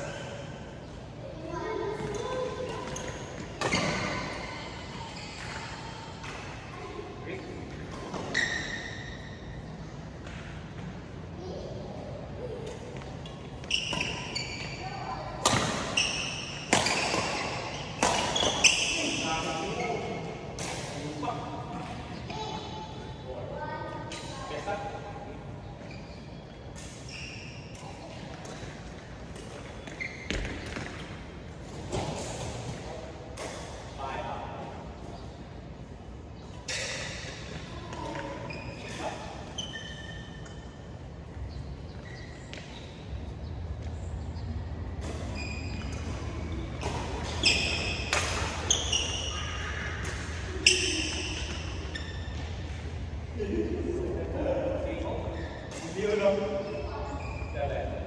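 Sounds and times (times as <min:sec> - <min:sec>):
court shoes squeaking: 0:00.0 - 0:24.8, 0:25.6 - 0:53.8, 0:54.7 - 0:58.0
racket striking shuttlecock: 0:46.8 - 0:48.7.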